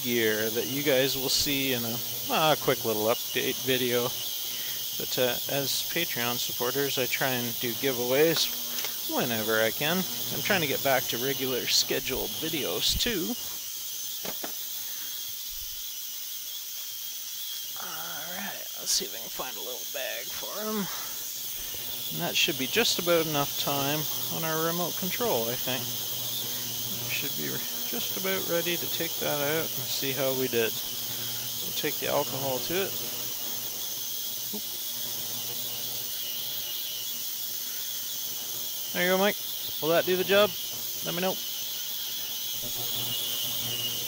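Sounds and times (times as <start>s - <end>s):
ultrasonic cleaner high hiss: 0.0s - 44.0s.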